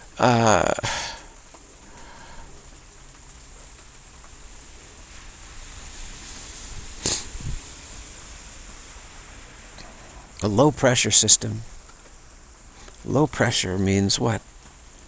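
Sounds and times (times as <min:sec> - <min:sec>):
rain falling: 0:00.0 - 0:15.0.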